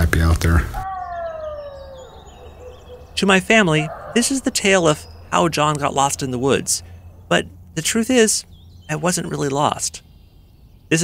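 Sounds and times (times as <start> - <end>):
long wailing call: 0.8 - 7.3
faint high bird chirps: 0.8 - 11.0.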